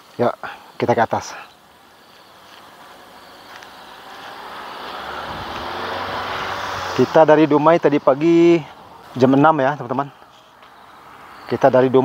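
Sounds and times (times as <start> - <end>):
vehicle engine and tyre noise: 0.0 - 12.0.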